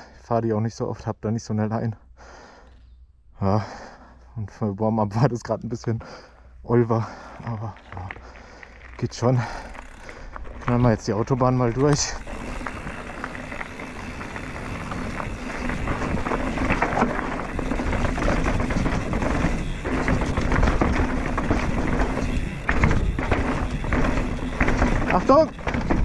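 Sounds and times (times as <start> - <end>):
bike chain and frame rattling: 7.0 - 26.0
bike tyres skidding on dirt: 7.0 - 26.0.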